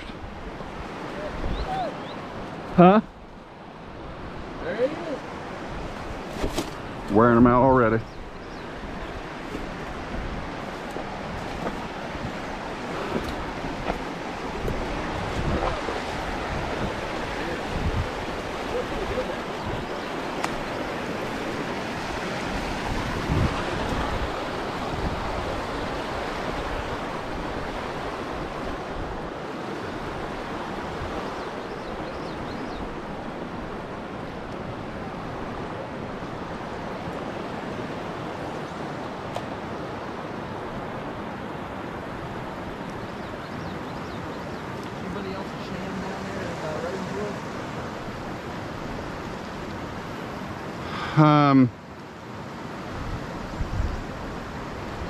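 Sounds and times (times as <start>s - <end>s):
river current rushing: 0.0s - 55.0s.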